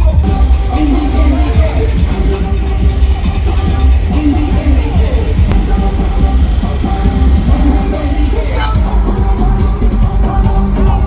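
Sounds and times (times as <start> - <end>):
loud carnival music with heavy bass: 0.0 - 11.0.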